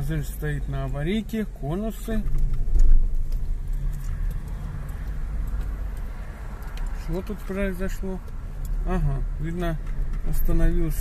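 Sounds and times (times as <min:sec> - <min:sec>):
car engine humming from inside: 0:00.0 - 0:11.0.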